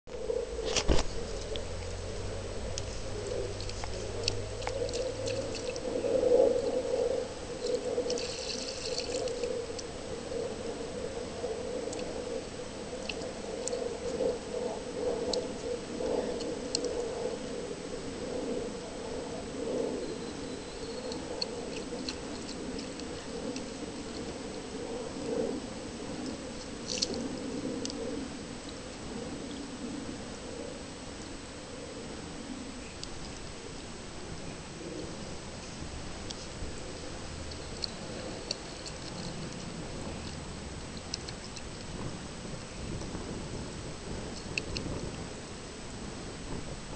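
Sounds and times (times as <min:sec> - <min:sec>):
small water splashes: 0:01.1 - 0:05.9, 0:08.0 - 0:09.9.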